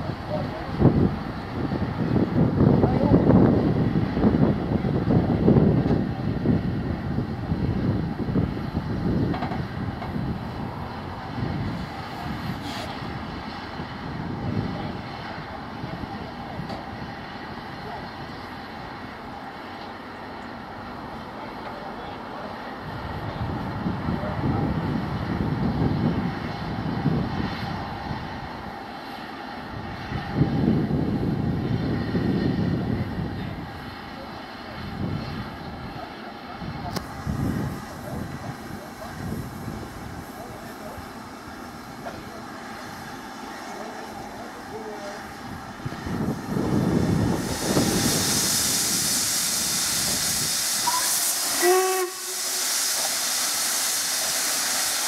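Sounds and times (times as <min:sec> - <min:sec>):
steam locomotive rumbling and hissing: 0:00.0 - 0:55.0.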